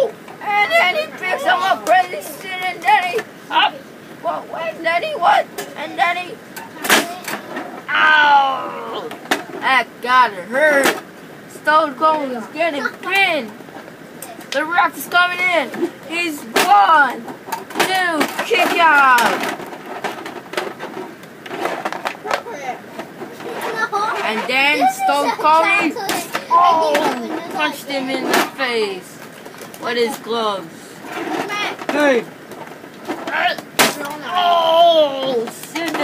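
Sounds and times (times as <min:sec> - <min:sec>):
plastic figures clattering: 0:06.6 - 0:07.9, 0:15.6 - 0:30.3, 0:31.1 - 0:36.0
boy crying out falling pitch: 0:07.9 - 0:09.1
boy grunting: 0:07.9 - 0:09.1, 0:34.1 - 0:35.5.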